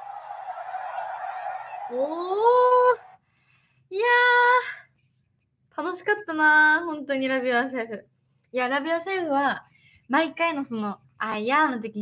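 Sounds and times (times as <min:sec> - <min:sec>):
stadium crowd noise: 0:00.0 - 0:03.2
woman exclaiming: 0:02.0 - 0:03.0.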